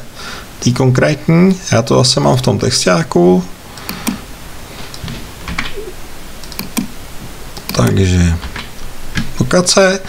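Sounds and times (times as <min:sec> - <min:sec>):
mouse clicking: 0:03.7 - 0:04.3, 0:04.9 - 0:07.0, 0:07.6 - 0:09.3
keyboard key presses: 0:04.9 - 0:07.0.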